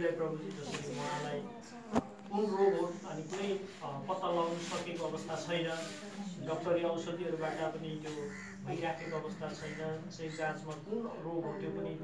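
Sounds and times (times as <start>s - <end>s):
man preaching: 2.4s - 12.0s.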